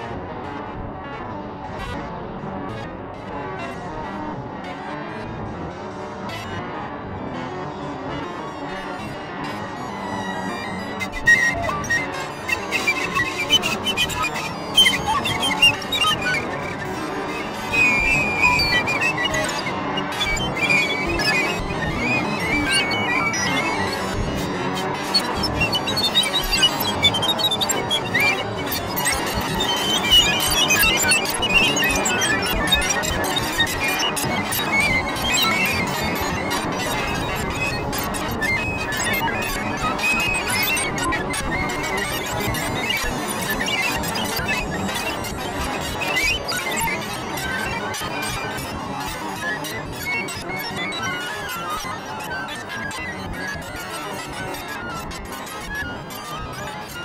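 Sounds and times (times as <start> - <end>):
processed flute with electronics: 10.6 - 48.6.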